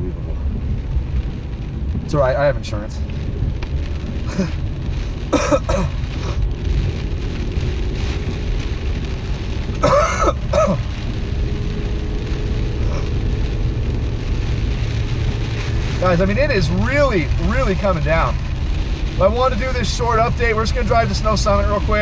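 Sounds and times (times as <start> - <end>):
road and rain noise in car cabin: 0.0 - 22.0
man coughing and clearing throat: 5.3 - 6.4, 9.8 - 10.9.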